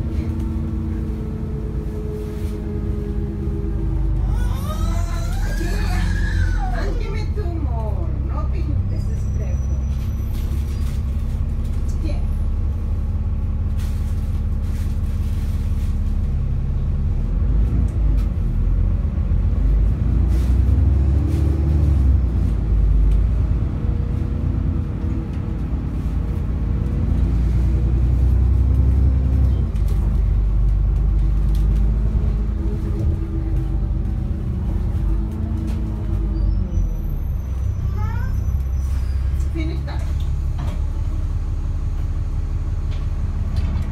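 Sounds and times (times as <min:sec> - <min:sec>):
bus engine and road drone: 0:00.0 - 0:43.9.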